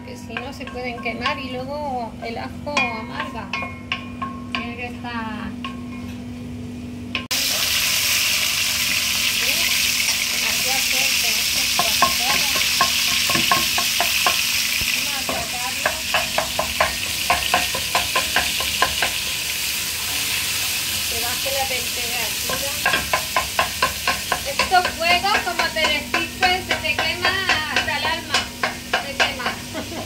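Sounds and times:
meat sizzling in a pot: 7.3s - 30.0s.

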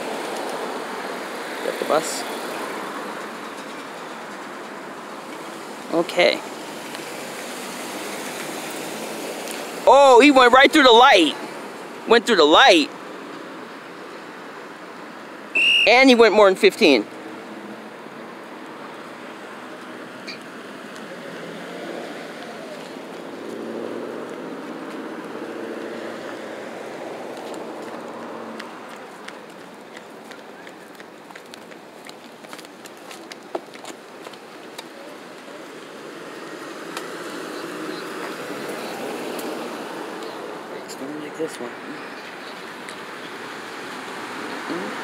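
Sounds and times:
cars driving past: 0.0s - 45.0s.

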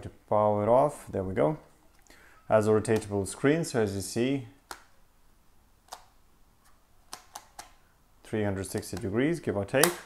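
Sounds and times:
small plastic clicks: 7.1s - 7.8s.

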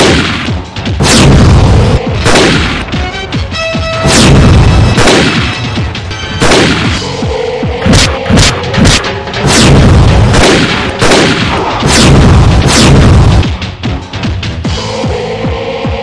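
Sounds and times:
rifle gunshots with booming echo: 0.0s - 3.0s, 4.0s - 5.8s, 6.4s - 7.1s, 7.8s - 13.5s.

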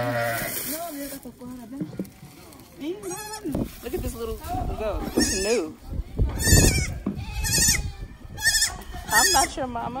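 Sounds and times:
goat kid bleating: 0.0s - 0.5s, 2.9s - 3.6s, 4.9s - 9.7s.

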